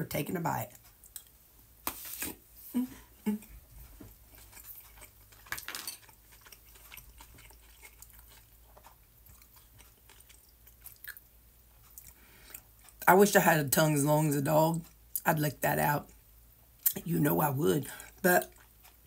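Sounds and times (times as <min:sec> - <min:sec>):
person chewing food: 0:00.7 - 0:13.1, 0:17.8 - 0:19.0.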